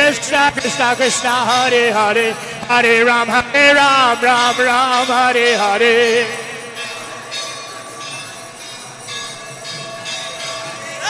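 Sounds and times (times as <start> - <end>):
crowd noise: 0.0 - 11.0
ringing bells and hand cymbals: 0.0 - 11.0.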